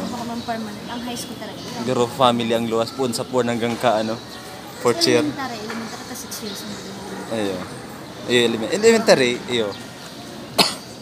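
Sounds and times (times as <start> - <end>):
person coughing: 10.6 - 10.9.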